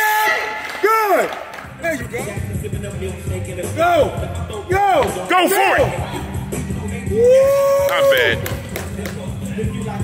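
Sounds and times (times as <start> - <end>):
person shouting and cheering: 7.0 - 8.6.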